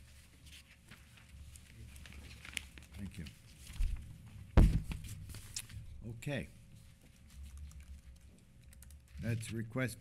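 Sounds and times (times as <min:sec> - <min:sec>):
faint keyboard typing: 0:07.0 - 0:09.9.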